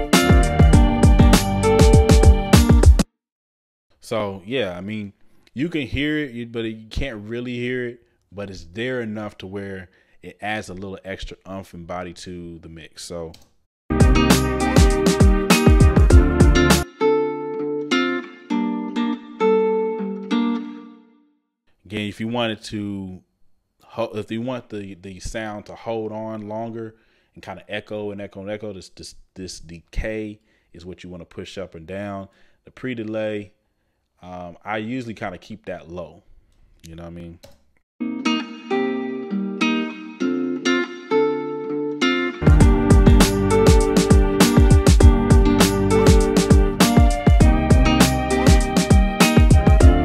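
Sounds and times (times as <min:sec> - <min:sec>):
guitar chords with reverb: 0:00.0 - 0:02.9, 0:13.9 - 0:21.0, 0:38.0 - 0:50.0.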